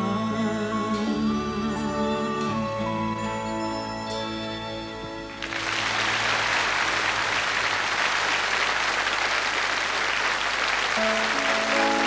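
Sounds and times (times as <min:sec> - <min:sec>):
audience applauding: 0:05.4 - 0:12.0
orchestra playing: 0:11.0 - 0:12.0.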